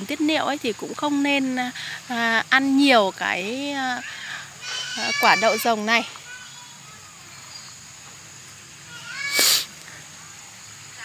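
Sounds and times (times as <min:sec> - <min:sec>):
animal call with harsh burst: 0:08.9 - 0:09.8.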